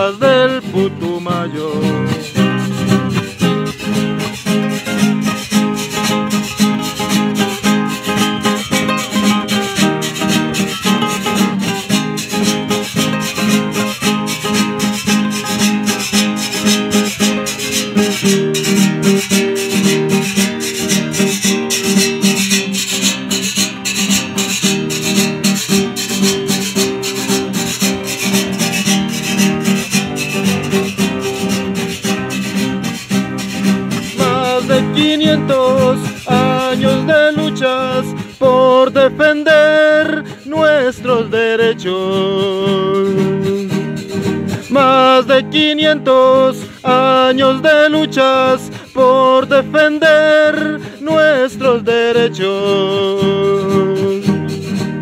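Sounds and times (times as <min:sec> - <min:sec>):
acoustic guitar strummed: 0:00.0 - 0:55.0.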